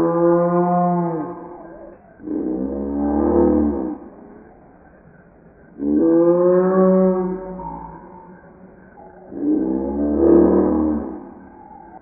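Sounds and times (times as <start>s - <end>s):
long low animal calls: 0.0s - 12.0s.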